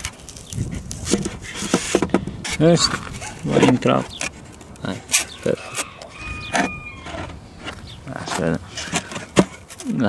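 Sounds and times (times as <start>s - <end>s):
wooden lid knocking and scraping: 1.0s - 10.0s
wooden lid squeaking: 1.0s - 10.0s.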